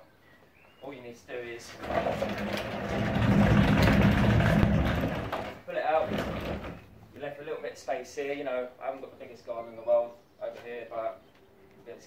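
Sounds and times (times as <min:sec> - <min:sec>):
wheels rumbling on paving slabs: 0:01.6 - 0:07.4.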